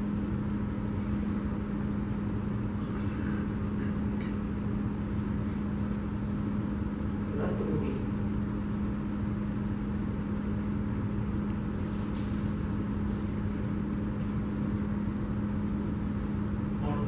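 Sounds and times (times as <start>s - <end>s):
low hum with rumble: 0.0s - 17.0s.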